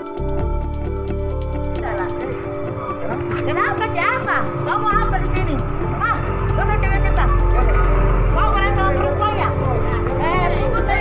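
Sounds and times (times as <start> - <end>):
background music: 0.0 - 11.0
woman speaking: 3.3 - 7.6, 8.4 - 11.0.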